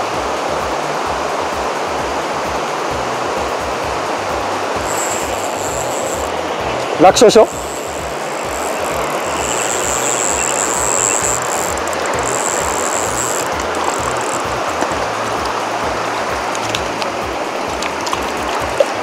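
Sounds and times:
river rushing over stones: 0.0s - 19.0s
background music with pulsing bass: 0.1s - 19.0s.

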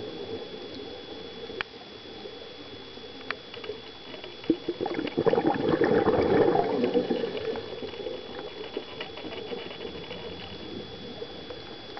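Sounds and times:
underwater bubbles gurgling: 0.0s - 11.9s
underwater crackle with clicks: 0.1s - 11.9s.

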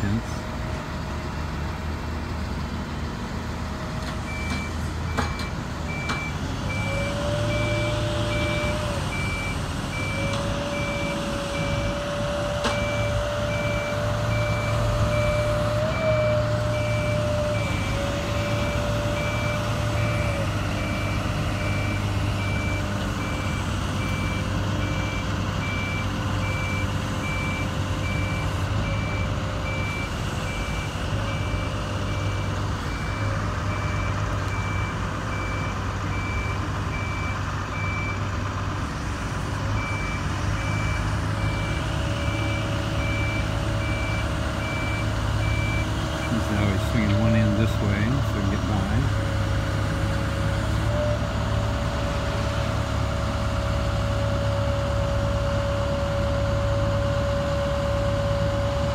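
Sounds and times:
heavy diesel engine drone: 0.0s - 58.9s.

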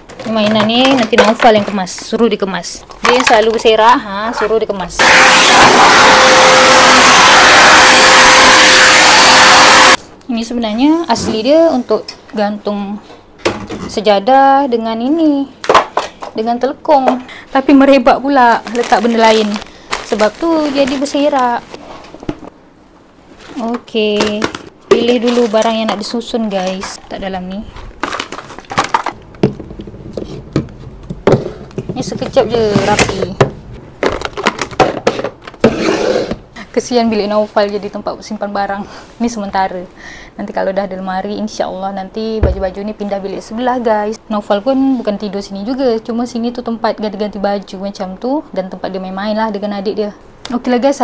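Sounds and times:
vacuum cleaner running: 5.0s - 10.0s
household items knocking: 42.4s - 42.8s.

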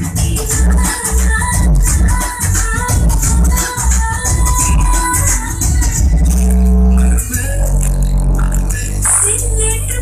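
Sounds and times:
bass-heavy music over speakers: 0.0s - 10.0s.

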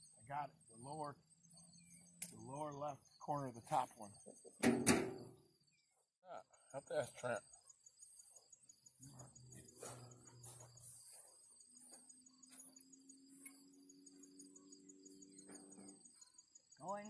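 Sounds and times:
crickets chirping: 0.0s - 17.0s.

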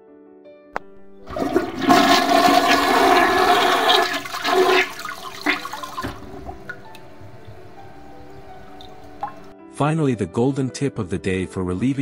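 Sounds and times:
toilet flushing water rush: 1.1s - 9.5s.

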